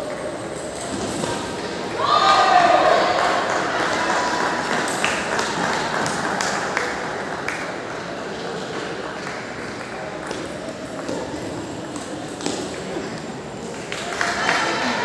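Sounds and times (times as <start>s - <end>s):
chatter of many voices: 0.0s - 15.0s.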